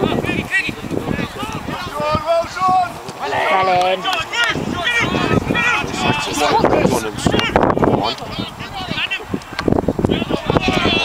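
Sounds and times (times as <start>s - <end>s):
men calling out: 0.1s - 11.0s.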